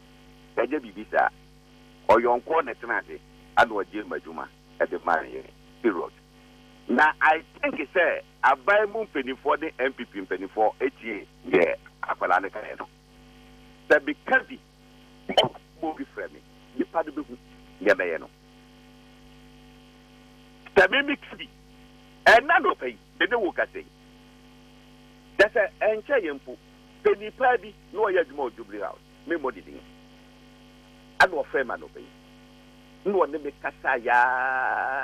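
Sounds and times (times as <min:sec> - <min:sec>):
electrical mains hum: 0:00.0 - 0:35.0
man's voice on telephone line: 0:00.6 - 0:01.3, 0:02.1 - 0:06.1, 0:06.9 - 0:12.9, 0:13.9 - 0:14.6, 0:15.8 - 0:18.3, 0:20.7 - 0:21.5, 0:22.2 - 0:23.8, 0:25.4 - 0:29.8, 0:31.2 - 0:32.1, 0:33.0 - 0:35.0
person speaking: 0:06.9 - 0:12.9, 0:22.3 - 0:23.8.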